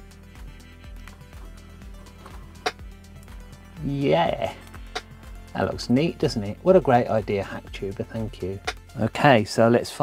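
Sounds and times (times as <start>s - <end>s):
music with steady beat: 0.0s - 9.3s.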